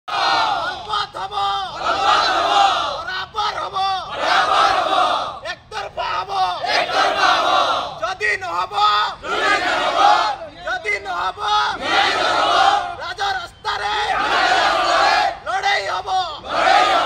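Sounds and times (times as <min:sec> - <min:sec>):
crowd shouting back together: 0:00.1 - 0:05.4, 0:11.2 - 0:17.0.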